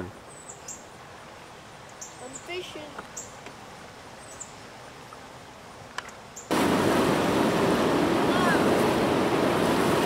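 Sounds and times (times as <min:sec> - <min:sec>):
river flowing: 0:00.0 - 0:10.0.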